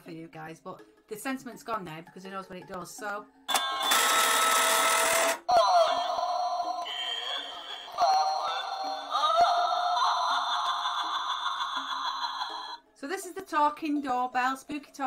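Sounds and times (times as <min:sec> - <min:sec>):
spooky voice over music: 0:05.5 - 0:12.8.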